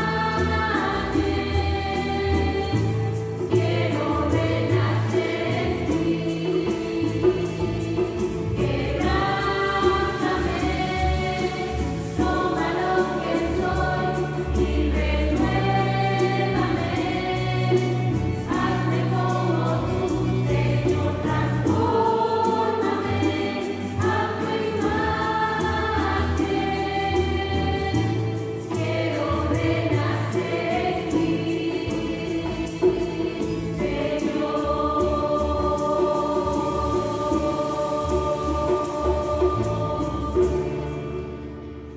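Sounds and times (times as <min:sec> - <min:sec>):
mixed choir singing: 0:00.0 - 0:41.2.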